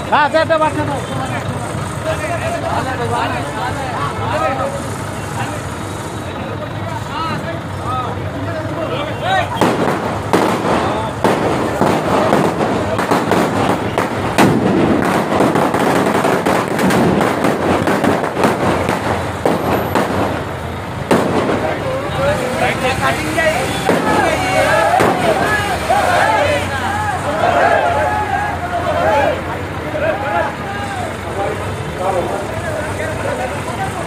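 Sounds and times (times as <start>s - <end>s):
firecrackers going off: 0.0s - 34.0s
crowd shouting: 2.0s - 20.5s, 21.4s - 34.0s.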